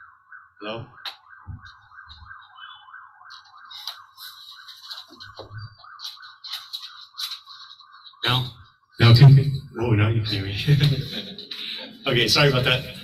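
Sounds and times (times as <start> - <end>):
scratchy crackles: 3.2 - 8.5.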